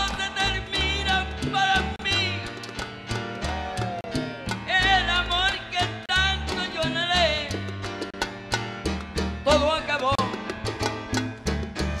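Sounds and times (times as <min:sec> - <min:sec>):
man singing: 0:00.0 - 0:02.5, 0:04.6 - 0:07.7, 0:09.4 - 0:10.4
salsa band playing: 0:00.0 - 0:12.0.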